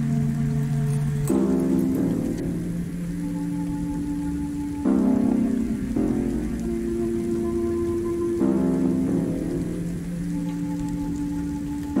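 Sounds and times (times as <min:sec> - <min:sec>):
rain hiss: 0:00.0 - 0:12.0
slow ambient music: 0:00.0 - 0:12.0.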